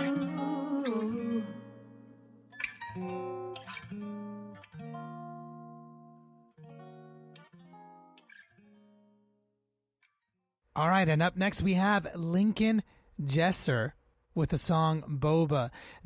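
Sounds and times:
acoustic guitar strummed chords: 0:00.0 - 0:09.2.

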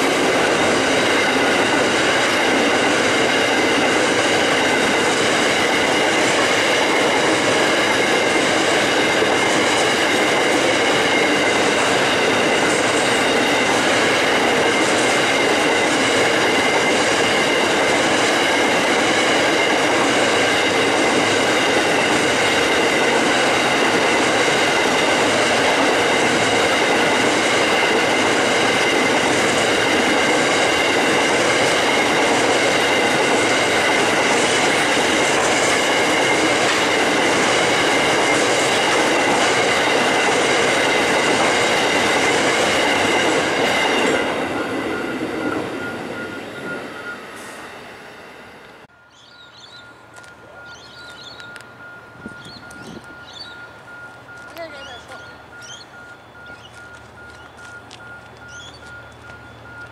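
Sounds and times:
train wagons rumbling past: 0:00.0 - 0:59.9.

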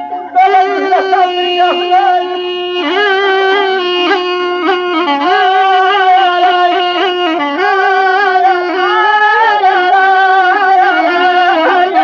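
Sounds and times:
reed wind instrument melody: 0:00.0 - 0:12.0.

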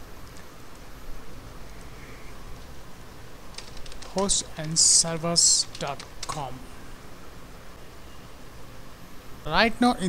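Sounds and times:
typing on keyboard: 0:03.5 - 0:06.5
man talking: 0:04.1 - 0:06.7, 0:09.4 - 0:10.0.

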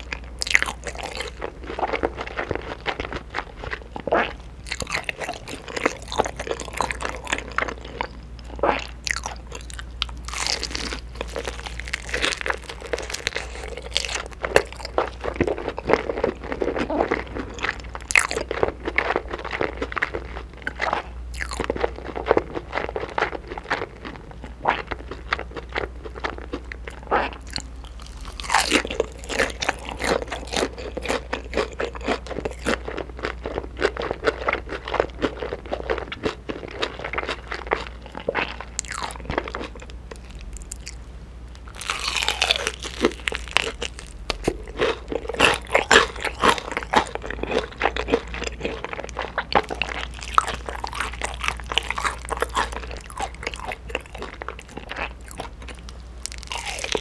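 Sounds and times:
crunchy chewing of fried chicken: 0:00.0 - 0:57.0.

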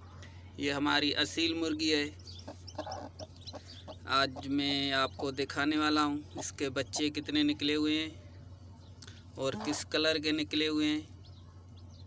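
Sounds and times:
chicks peeping: 0:00.1 - 0:12.0
hen clucking quietly: 0:02.4 - 0:05.2, 0:09.5 - 0:09.9.

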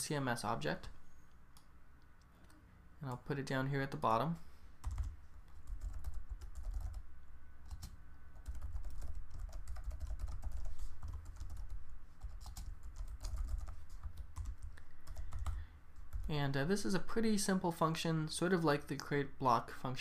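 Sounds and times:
computer keyboard typing: 0:04.8 - 0:07.0, 0:07.6 - 0:16.3.

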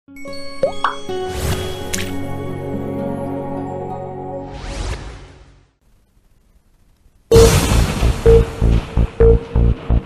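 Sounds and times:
sharp bright hit: 0:07.3 - 0:09.4.

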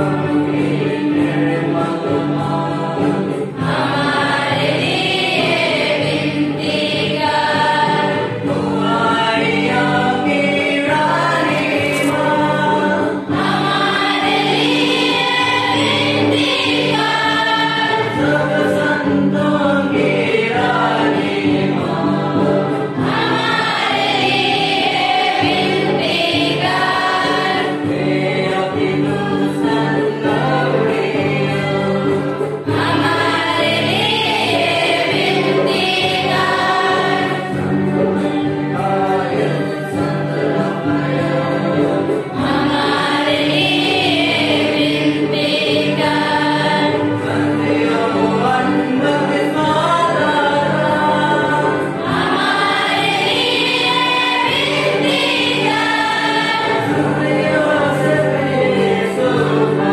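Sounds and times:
church choir singing a hymn: 0:00.0 - 0:59.9.

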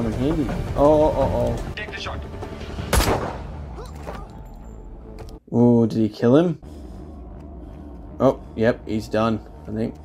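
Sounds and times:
pistol shot echoing: 0:02.9 - 0:03.6.

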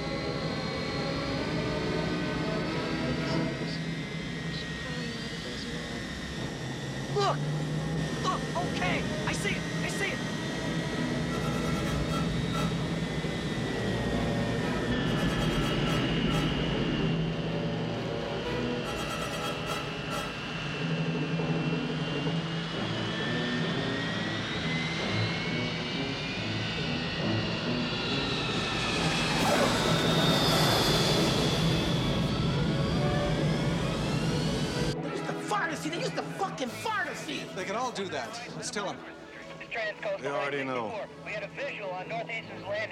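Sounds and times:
jet airliner engines whining: 0:00.0 - 0:42.9
film score music: 0:06.3 - 0:42.9.

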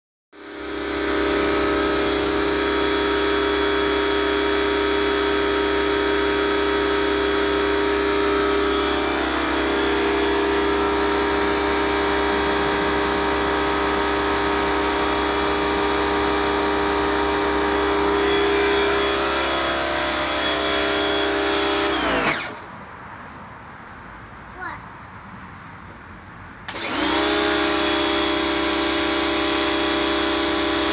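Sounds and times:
pressure washer running: 0:00.4 - 0:22.9, 0:26.7 - 0:30.9.

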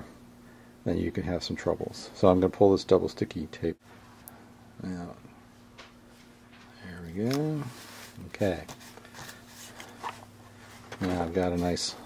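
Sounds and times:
plastic handling rustles and clicks: 0:05.8 - 0:11.9.

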